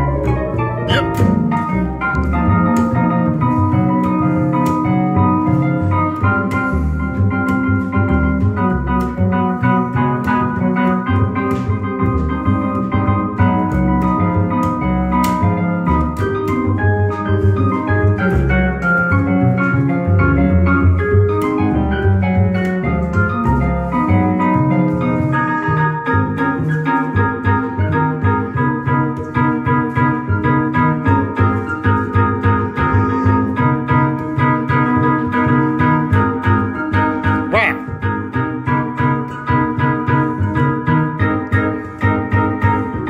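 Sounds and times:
organ-like keyboard chords: 0.0s - 43.0s
plucked upright bass: 0.0s - 43.0s.

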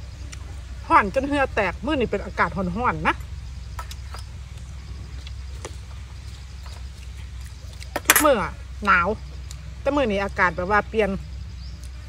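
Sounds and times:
steady low rumble: 0.0s - 12.0s
chewing clicks: 3.8s - 8.1s, 11.8s - 12.0s.

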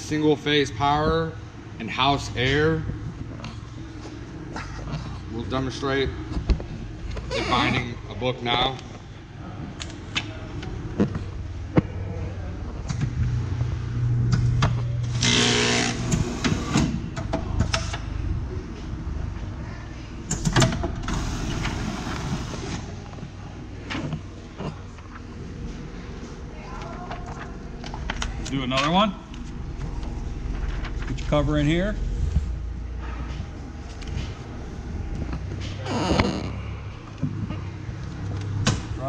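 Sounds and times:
binding machine motor hum: 14.2s - 17.9s.

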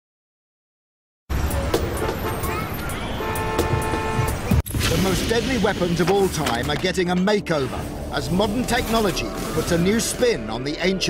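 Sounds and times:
documentary theme music: 1.4s - 11.0s.

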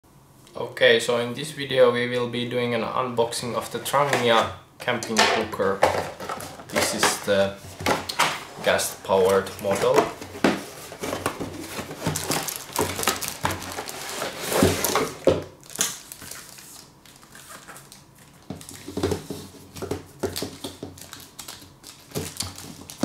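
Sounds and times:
cardboard and plastic wrap rustling: 5.6s - 23.0s.

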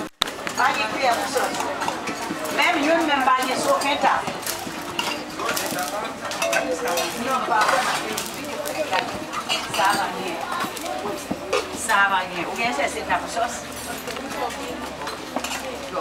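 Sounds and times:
children chattering: 0.0s - 16.0s
metal dishes clinking: 0.6s - 8.2s, 8.9s - 10.3s, 15.0s - 15.8s.

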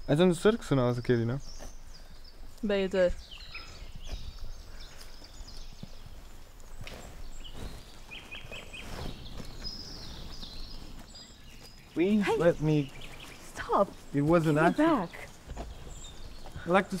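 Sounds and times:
birds chirping: 0.0s - 17.0s.

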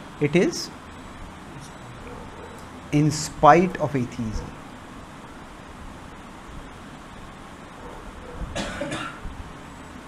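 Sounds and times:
faint room hiss: 0.0s - 10.0s
person coughing: 8.6s - 9.2s.

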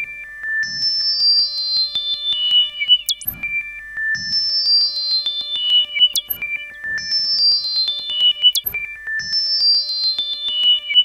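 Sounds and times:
synthesizer whistle-like tones: 0.0s - 11.0s
fast rising synth chirp: 0.7s - 3.6s, 4.2s - 9.6s.

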